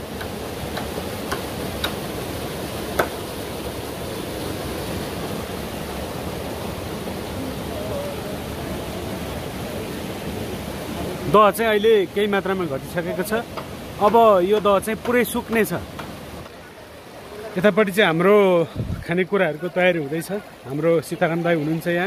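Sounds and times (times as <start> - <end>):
stream rushing over rocks: 0.0 - 22.0.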